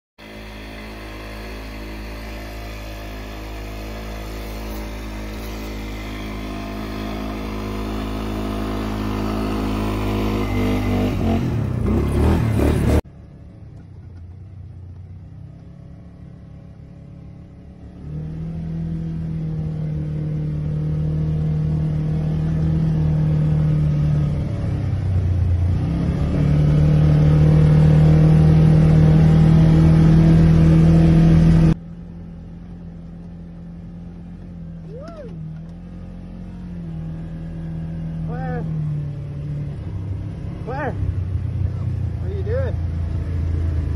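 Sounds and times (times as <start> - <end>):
atv engine: 0.2 - 43.9.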